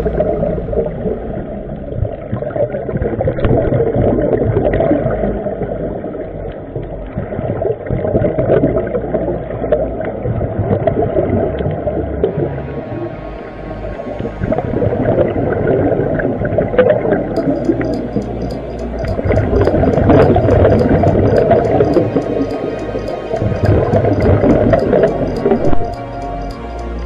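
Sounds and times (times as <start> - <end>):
underwater low rumble: 0.0 - 27.0
faint underwater clicks: 16.8 - 27.0.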